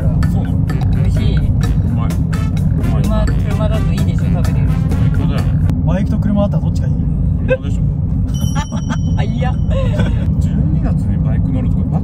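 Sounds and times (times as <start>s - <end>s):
background music: 0.0s - 5.7s
car cabin road and engine noise: 0.0s - 12.0s.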